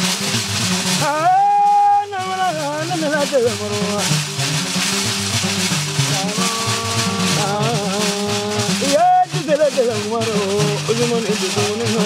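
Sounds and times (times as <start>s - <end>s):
harp-lute plucked: 0.0s - 12.0s
rattling percussion: 0.0s - 12.0s.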